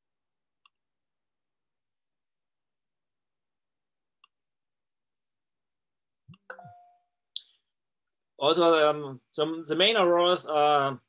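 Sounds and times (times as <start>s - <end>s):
clicks with ringing tone: 6.4s - 7.1s.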